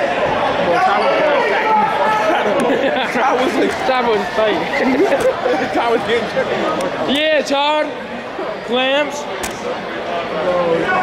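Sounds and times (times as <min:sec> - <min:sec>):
crowd hubbub of voices: 0:00.0 - 0:11.0.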